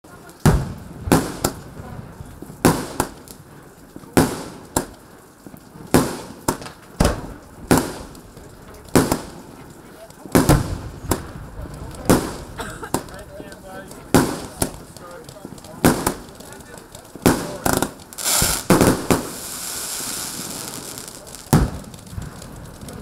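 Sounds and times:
firework pops with echo: 0.2s - 23.0s.

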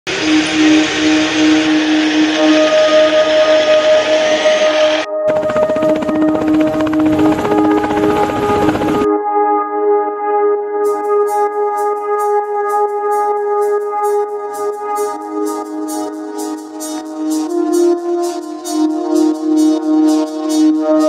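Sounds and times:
helicopter blades beating: 0.1s - 9.1s
music of long held notes: 0.1s - 21.0s.

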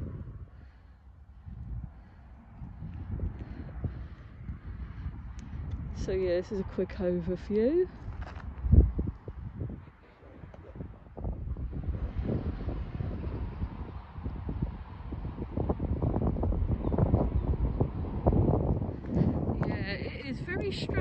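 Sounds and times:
wind buffeting microphone: 0.0s - 21.0s.

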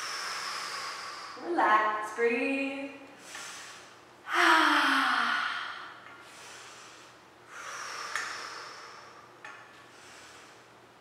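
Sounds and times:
woman breathing: 0.0s - 1.5s, 3.1s - 11.0s.

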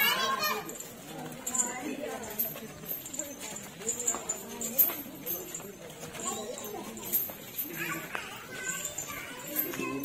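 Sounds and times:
light high clinks: 0.0s - 10.0s
men talking and calling: 0.0s - 10.0s.

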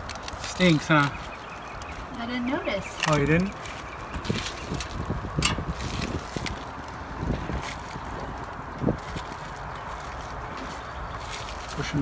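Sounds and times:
plastic rustling: 0.0s - 12.0s.

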